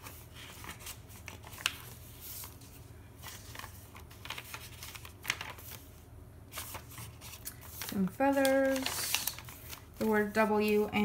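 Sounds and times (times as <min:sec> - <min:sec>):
paper pages rustling: 0:00.0 - 0:11.0.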